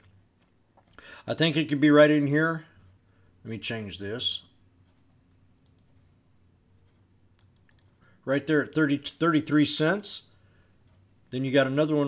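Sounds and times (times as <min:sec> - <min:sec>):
faint computer mouse clicks: 0:04.9 - 0:06.1, 0:06.8 - 0:08.0.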